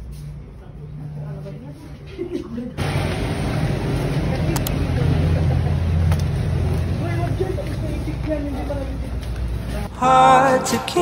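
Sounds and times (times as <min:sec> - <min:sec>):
low rumble of road traffic: 0:02.8 - 0:09.9
vehicle engine: 0:02.8 - 0:09.9.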